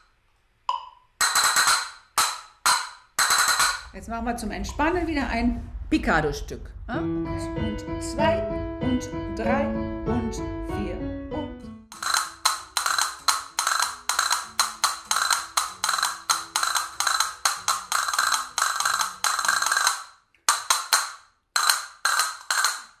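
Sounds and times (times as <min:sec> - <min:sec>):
castanets clicking: 0:01.2 - 0:03.9, 0:11.9 - 0:23.0
faint piano: 0:04.4 - 0:11.9.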